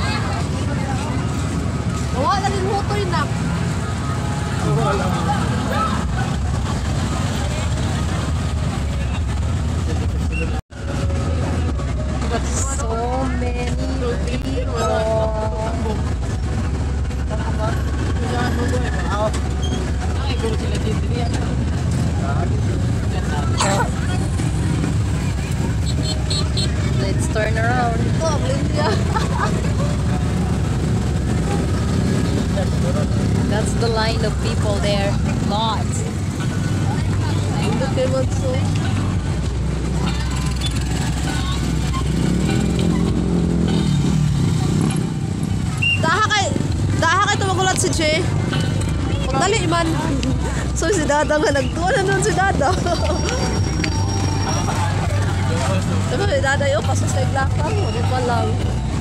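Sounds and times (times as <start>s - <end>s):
crowd chatter: 0.0s - 59.0s
engine passing by: 0.0s - 59.0s
traffic engine rumble: 0.0s - 59.0s.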